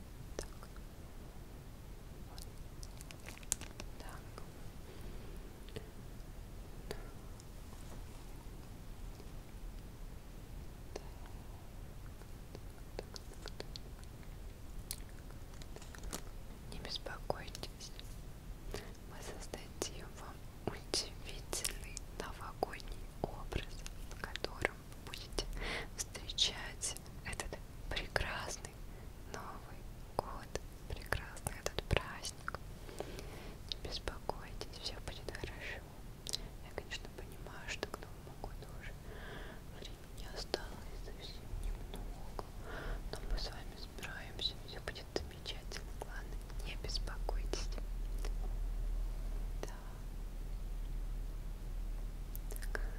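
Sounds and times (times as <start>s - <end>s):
woman whispering: 3.7s - 4.6s, 6.8s - 7.4s, 10.9s - 11.6s, 12.5s - 13.9s, 16.6s - 18.0s, 18.8s - 32.6s, 33.7s - 39.0s, 39.7s - 48.4s, 49.6s - 50.0s, 52.5s - 52.9s.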